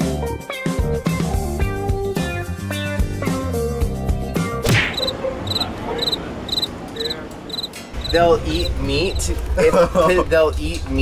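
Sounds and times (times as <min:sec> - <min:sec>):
background music: 0:00.0 - 0:06.1
street noise: 0:04.1 - 0:11.0
crossing signal high chirp: 0:05.0 - 0:08.2.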